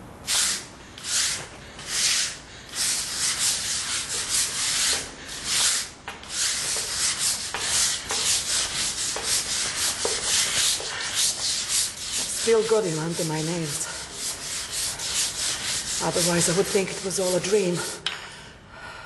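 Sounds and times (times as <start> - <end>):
brush scrubbing hard floor: 0.3 - 18.0.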